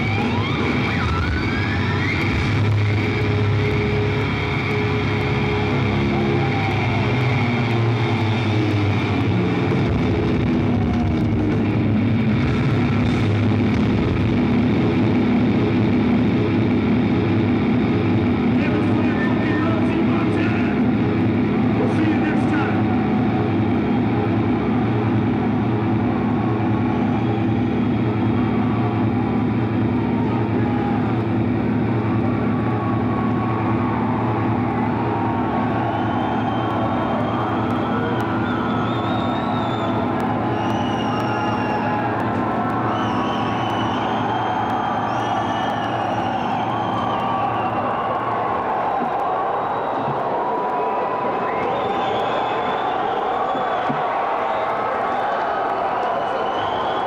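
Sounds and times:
distorted guitar and bass drone: 0.0s - 50.3s.

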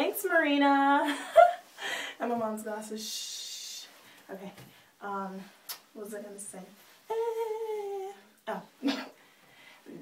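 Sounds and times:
woman humming: 7.1s - 8.3s.

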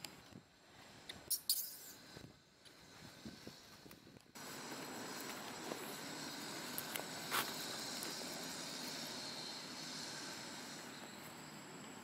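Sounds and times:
outdoor background drone: 0.0s - 12.0s.

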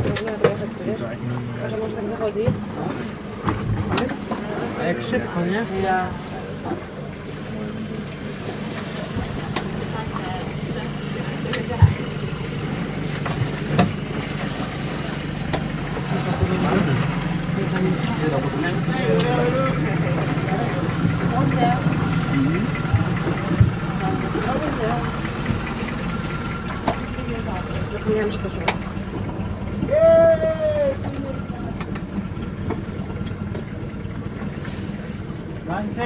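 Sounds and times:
boat engine droning: 0.0s - 36.0s.

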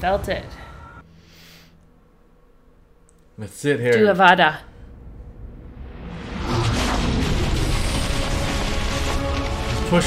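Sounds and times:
film soundtrack music: 0.0s - 10.0s
booming blast with low rumble: 4.9s - 9.4s.

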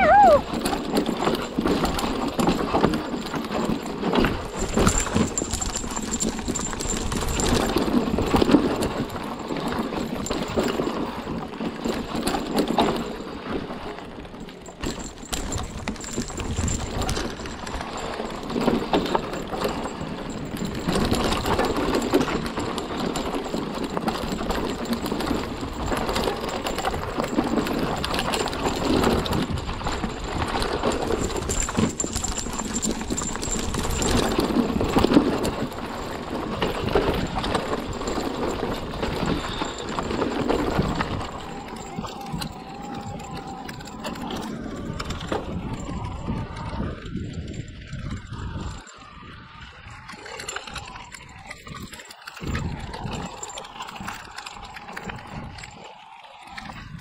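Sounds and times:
bike chain and frame rattling: 0.0s - 57.0s
tyres rolling over dirt: 0.0s - 57.0s.

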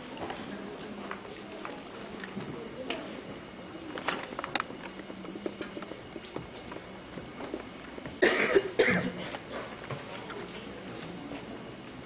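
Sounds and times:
person coughing: 8.2s - 9.7s.

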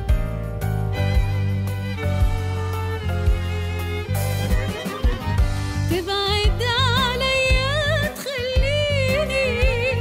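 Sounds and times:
instrumental backing with beat: 0.0s - 10.0s.

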